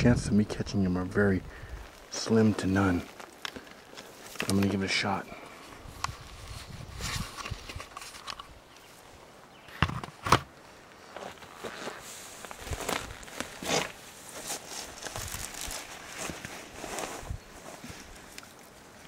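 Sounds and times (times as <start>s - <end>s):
dry plants rustling and crackling: 0.0s - 19.0s
footsteps in dry brush: 1.6s - 8.3s, 11.0s - 18.3s.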